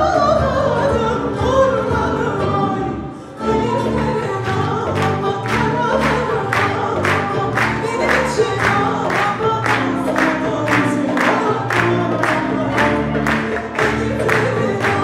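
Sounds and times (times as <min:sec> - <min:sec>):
classical music ensemble: 0:00.0 - 0:15.0
woman singing: 0:00.0 - 0:15.0
steady drum beat: 0:05.1 - 0:15.0.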